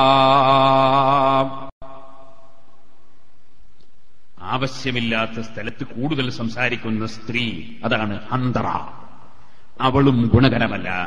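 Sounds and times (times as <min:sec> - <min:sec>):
faint background hiss: 0:01.8 - 0:11.0.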